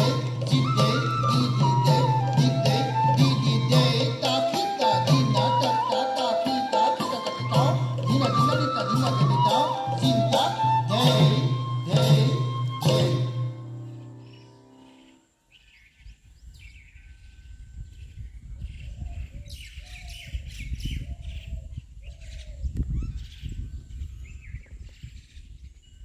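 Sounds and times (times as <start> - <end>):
music: 0.0 - 15.2
birds chirping and calling: 0.0 - 26.0.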